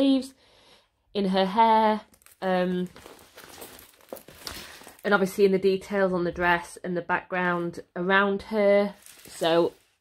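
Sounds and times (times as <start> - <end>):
plastic film crinkling: 2.0 - 5.3, 8.8 - 10.0.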